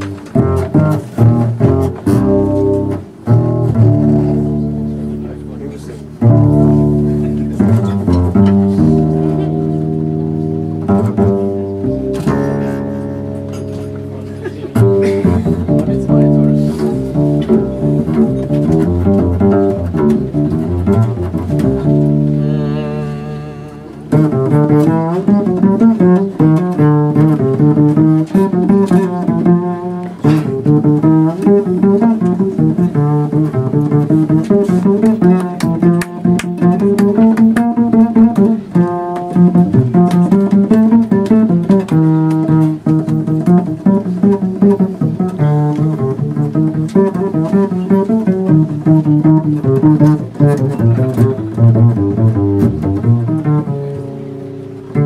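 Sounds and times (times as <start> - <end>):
double bass playing: 0.0 - 55.0.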